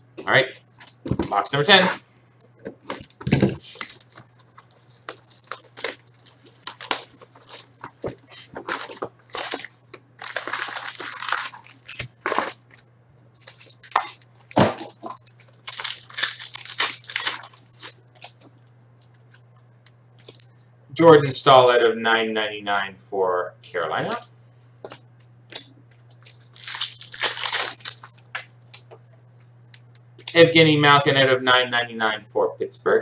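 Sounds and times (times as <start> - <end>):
plastic wrapping tearing and rustling: 2.8 - 12.8, 13.4 - 18.6, 26.1 - 28.3.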